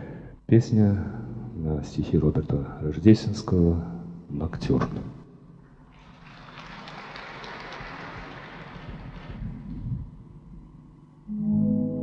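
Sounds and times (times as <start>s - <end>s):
audience applauding: 5.9s - 9.6s.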